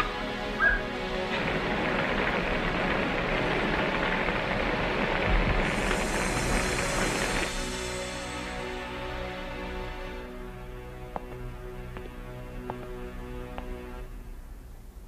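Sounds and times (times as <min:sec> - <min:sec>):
dramatic film score music: 0:00.0 - 0:14.8
large fire burning: 0:00.0 - 0:15.0.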